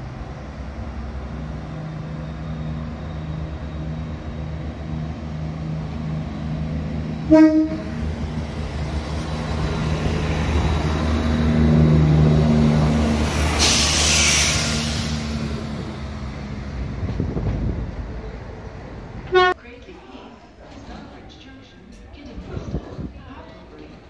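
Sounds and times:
diesel train passing: 0.0 - 24.0
hissing air burst: 13.4 - 15.4.

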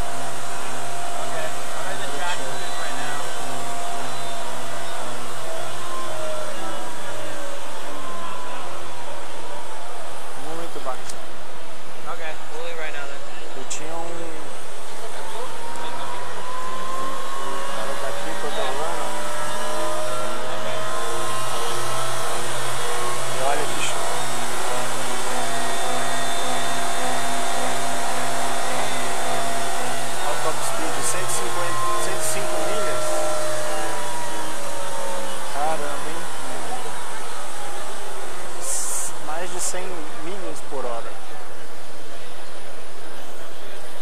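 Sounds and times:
electric motor whine: 0.0 - 44.0.

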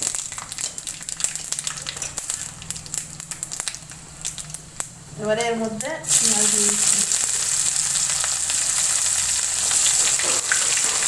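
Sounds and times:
spices sizzling in hot oil: 0.0 - 11.0.

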